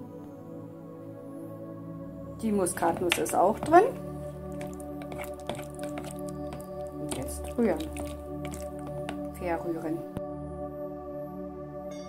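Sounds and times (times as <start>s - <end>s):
background music: 0.0s - 12.0s
spoon stirring puree in bowl: 2.5s - 9.6s
soft squelching: 2.6s - 9.6s.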